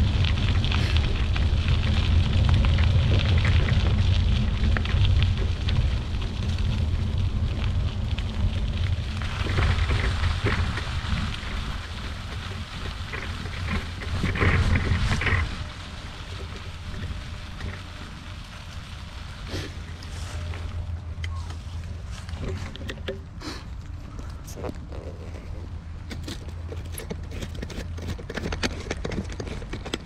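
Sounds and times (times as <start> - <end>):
rustle: 0.0 - 30.0
tyres crackling on wet path: 0.0 - 30.0
wind buffeting microphone: 0.0 - 30.0.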